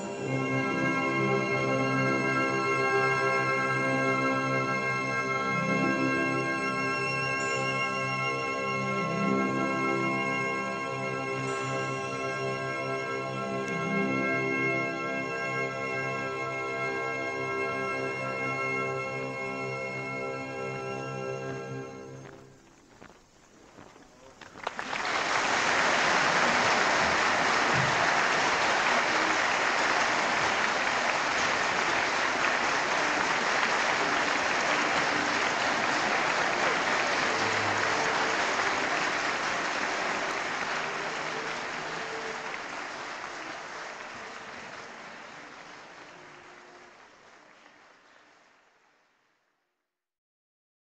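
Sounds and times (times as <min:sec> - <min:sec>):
concert audience applauding: 0:00.0 - 0:17.8, 0:23.0 - 0:49.4.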